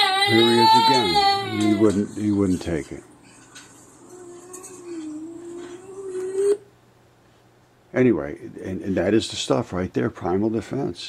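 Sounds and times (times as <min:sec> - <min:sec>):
child whining on one pitch: 0:00.0 - 0:02.2, 0:04.0 - 0:06.7.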